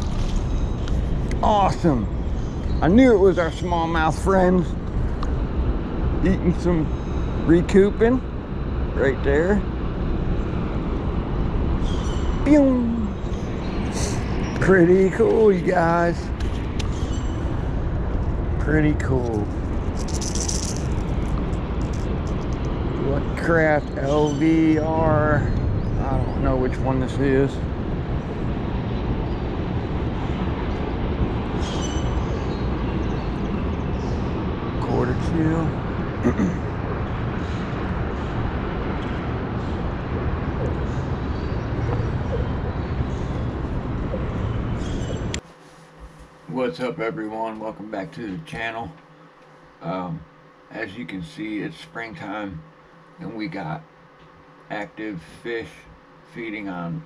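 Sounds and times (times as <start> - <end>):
steady low rumble: 0.0 - 45.4
fishing tackle rattling hiss: 19.3 - 22.8.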